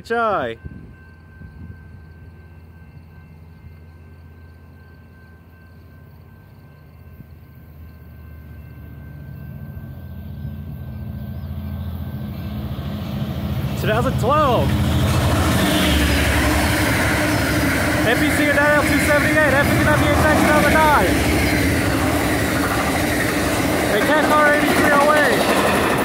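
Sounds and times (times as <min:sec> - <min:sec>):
diesel locomotive engine rumble: 0:00.0 - 0:26.0.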